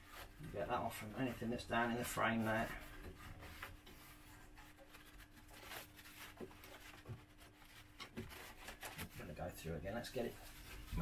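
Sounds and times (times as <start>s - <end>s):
paper towel rubbing: 0.0s - 11.0s.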